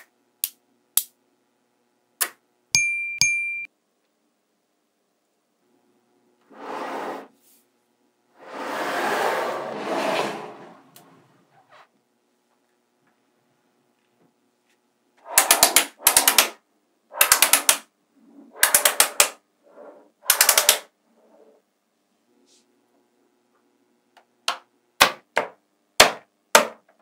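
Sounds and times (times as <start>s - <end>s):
magnetic balls snapping together: 0.0s - 1.2s, 2.2s - 2.4s, 15.2s - 16.6s, 17.2s - 17.9s, 18.6s - 19.4s, 20.2s - 20.9s.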